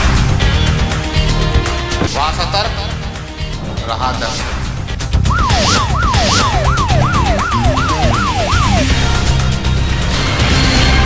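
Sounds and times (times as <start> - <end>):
fast wailing siren: 5.2 - 9.4.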